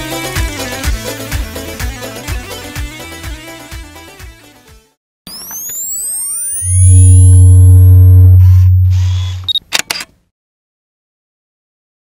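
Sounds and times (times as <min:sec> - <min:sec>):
deep sustained electronic tone: 0:05.8 - 0:09.5
sharp clicks: 0:09.0 - 0:10.1.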